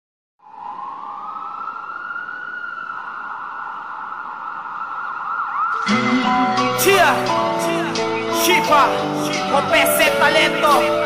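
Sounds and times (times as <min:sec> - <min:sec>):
siren-like wail: 0:00.4 - 0:06.8
music with a beat: 0:05.8 - 0:11.0.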